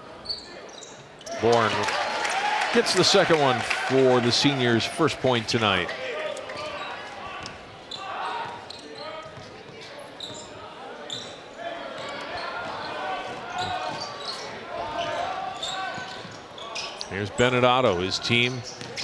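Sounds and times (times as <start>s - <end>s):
murmur of voices: 2.7s - 19.0s.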